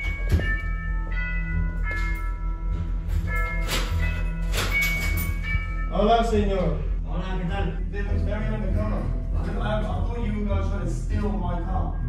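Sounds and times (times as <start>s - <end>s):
sharp percussion hits: 0.0s - 10.2s
bell-like notes: 0.0s - 12.0s
deep bass: 0.0s - 12.0s.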